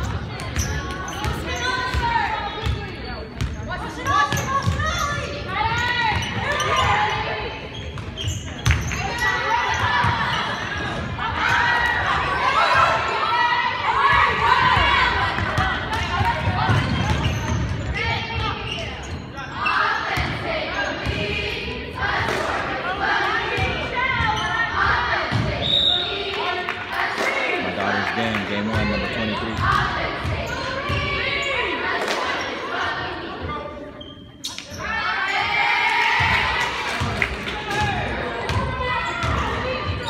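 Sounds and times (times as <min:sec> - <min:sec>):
basketball bouncing on gym floor: 0:00.0 - 0:05.0, 0:14.2 - 0:18.5, 0:28.7 - 0:31.2
voices shouting in echoing gym: 0:00.0 - 0:40.0.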